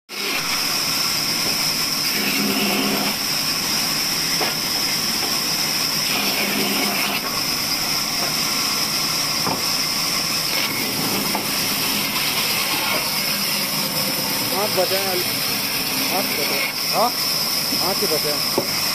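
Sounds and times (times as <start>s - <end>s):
band saw cutting wood: 0.1s - 18.9s.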